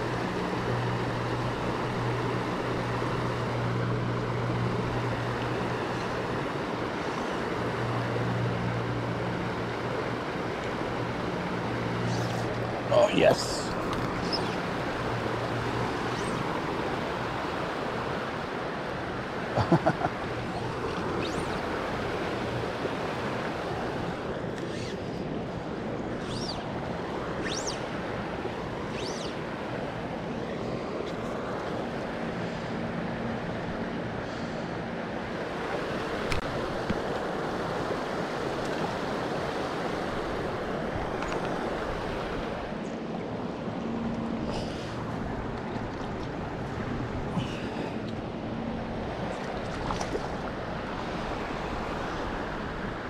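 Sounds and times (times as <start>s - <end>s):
river water rushing: 0.0s - 53.0s.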